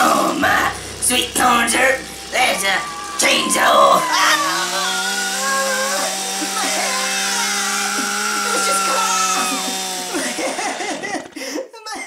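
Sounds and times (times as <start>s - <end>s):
chainsaw cutting pumpkin: 0.0s - 11.6s.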